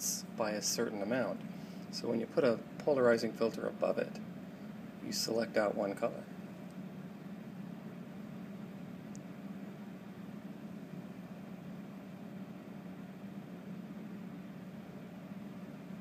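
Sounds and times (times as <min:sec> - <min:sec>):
cooling fan humming: 0:00.0 - 0:16.0
faint tick: 0:09.1 - 0:09.3.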